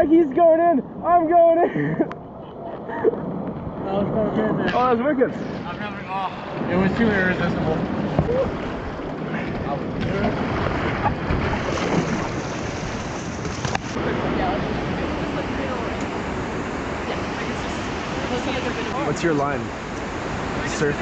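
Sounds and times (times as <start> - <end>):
rushing river rapids: 10.1 - 21.0.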